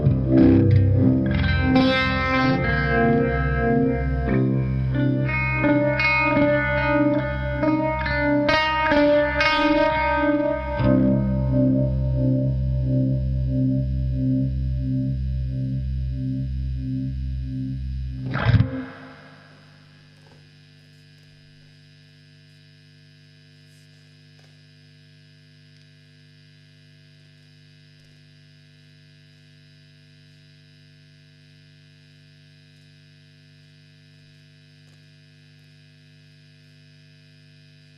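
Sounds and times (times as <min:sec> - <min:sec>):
electric guitar with vibe effect: 0:00.0 - 0:20.4
tube amp mains hum: 0:00.0 - 0:37.9.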